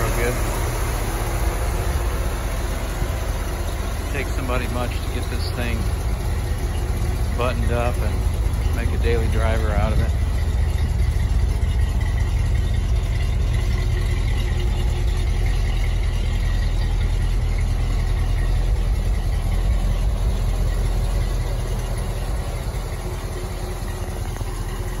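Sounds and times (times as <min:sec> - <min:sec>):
pickup truck engine idling: 0:00.0 - 0:25.0.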